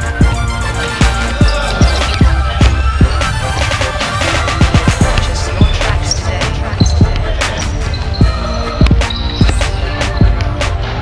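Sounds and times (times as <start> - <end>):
background music: 0.0 - 11.0
basketballs bouncing on gym floor: 0.9 - 10.6.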